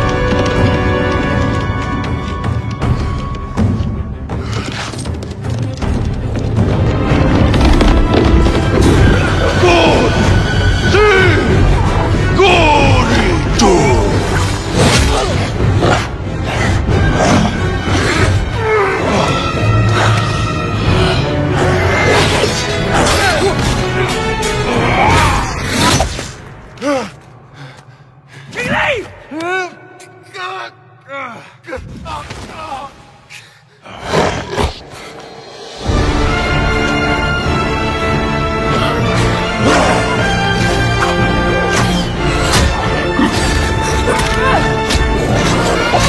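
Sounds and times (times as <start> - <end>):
film soundtrack music: 0.0 - 46.0.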